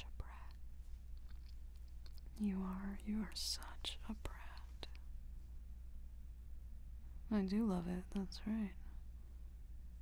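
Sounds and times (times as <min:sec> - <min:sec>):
steady low hum: 0:00.0 - 0:10.0
mouth clicks: 0:00.4 - 0:02.4.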